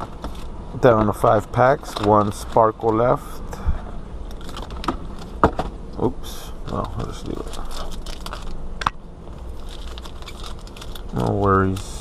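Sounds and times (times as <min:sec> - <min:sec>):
wrapper crinkling: 0:06.6 - 0:08.6, 0:09.4 - 0:12.0.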